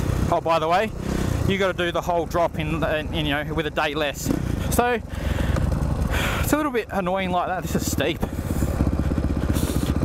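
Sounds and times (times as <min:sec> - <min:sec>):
dirt bike engine chugging: 0:00.0 - 0:10.0.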